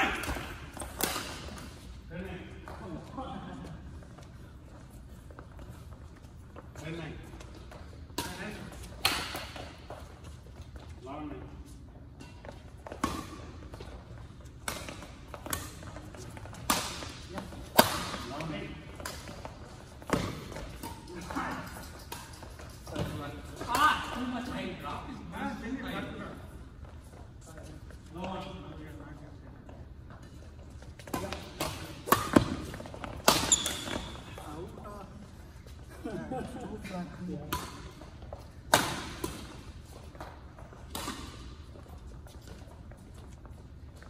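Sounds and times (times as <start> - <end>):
rackets smacking shuttlecock: 0.0 - 2.0, 12.2 - 24.3, 30.8 - 34.4, 37.4 - 42.8.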